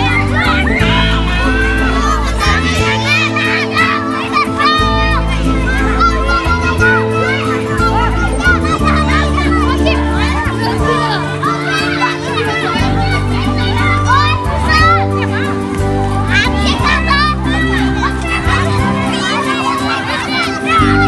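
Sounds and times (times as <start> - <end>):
background music with bass notes: 0.0 - 21.0
children chattering and calling out: 0.0 - 21.0.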